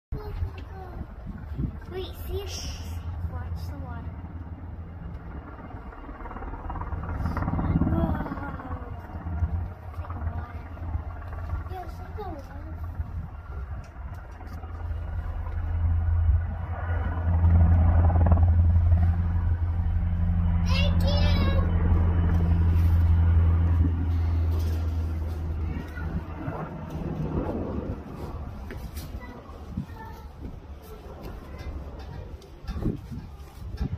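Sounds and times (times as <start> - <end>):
helicopter rotor drone: 0.1 - 33.9.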